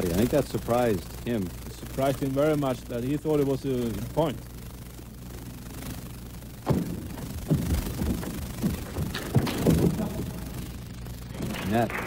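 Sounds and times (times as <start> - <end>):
steady low hum: 0.0 - 12.0
sharp knocks: 6.6 - 10.3.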